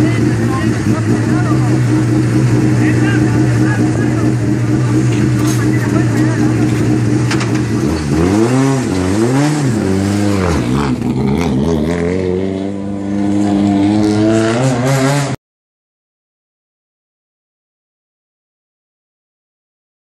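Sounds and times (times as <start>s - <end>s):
car engine idling and revving: 0.0s - 15.4s.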